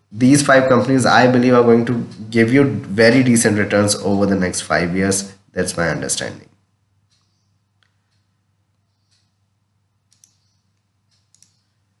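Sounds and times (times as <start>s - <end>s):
computer mouse clicks: 7.1s - 11.8s.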